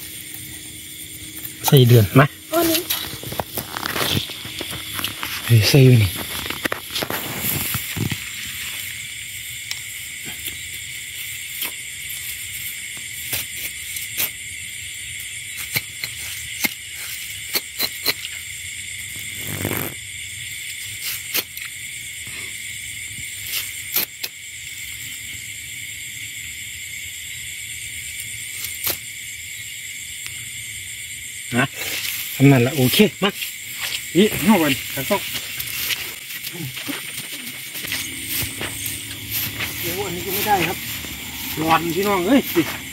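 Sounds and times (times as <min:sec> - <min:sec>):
night insects chirping: 0:00.0 - 0:42.9
rustle: 0:31.8 - 0:42.9.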